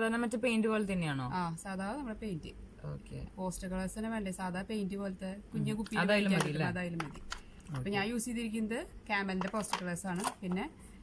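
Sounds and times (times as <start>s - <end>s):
woman speaking: 0.0s - 2.6s, 3.2s - 10.8s.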